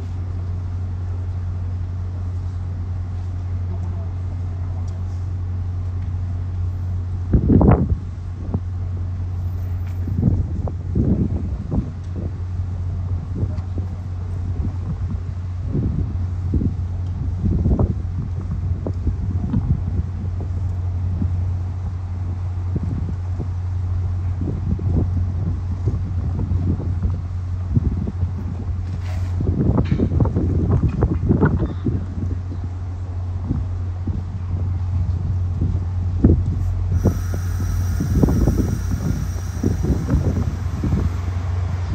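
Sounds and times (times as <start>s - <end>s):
wind buffeting microphone: 10.1s - 21.9s, 29.4s - 32.6s, 33.4s - 41.9s
diesel locomotive idling: 36.6s - 41.9s.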